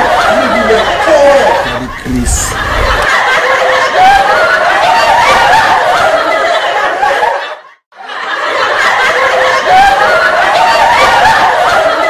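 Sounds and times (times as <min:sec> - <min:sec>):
group of people laughing: 0:00.0 - 0:12.0.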